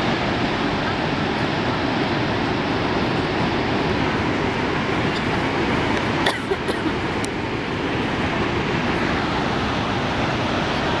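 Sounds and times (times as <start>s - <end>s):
waterfall roaring: 0.0s - 11.0s.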